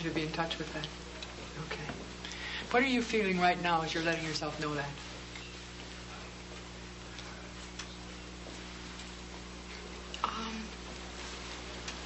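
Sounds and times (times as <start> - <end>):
electrical hum and hiss: 0.0 - 12.0.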